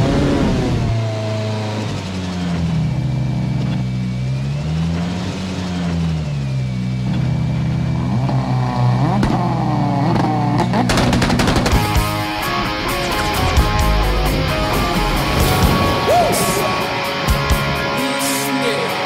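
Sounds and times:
rally car engine revving: 0.0 - 19.0
exhaust crackles and pops: 8.2 - 16.0.

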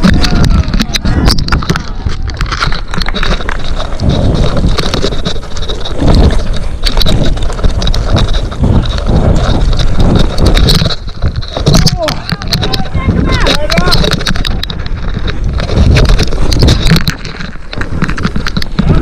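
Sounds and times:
bike rattling and clattering: 0.0 - 19.0
bike tyres over roots and dirt: 0.0 - 19.0
wind buffeting microphone: 0.0 - 19.0.

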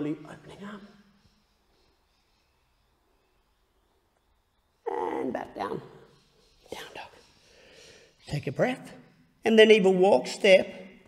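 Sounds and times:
man speaking: 5.2 - 7.3, 8.2 - 11.0.

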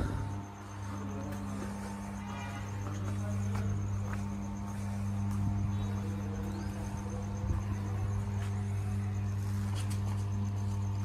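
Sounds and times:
transformer hum: 0.0 - 11.0.

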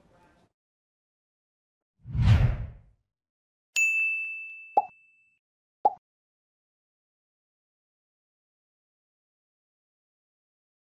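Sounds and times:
bright bell-like ding: 3.8 - 5.3.

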